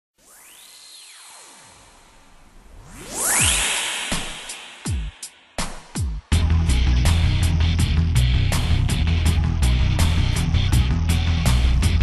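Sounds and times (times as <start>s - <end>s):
synthesizer tone sweeping: 0.2s - 5.6s
noise riser: 0.2s - 6.0s.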